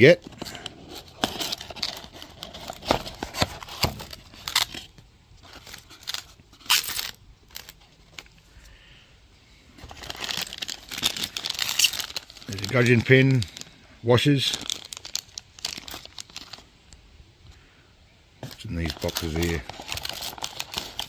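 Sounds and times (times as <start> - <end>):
cardboard box being opened: 0.2 - 7.7
plastic bags crinkling: 0.3 - 8.4, 9.8 - 16.7, 18.4 - 21.0.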